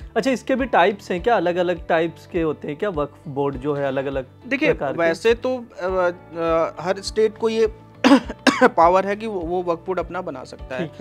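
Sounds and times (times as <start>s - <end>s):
man coughing: 8.0s - 8.8s
man speaking: 10.6s - 11.0s.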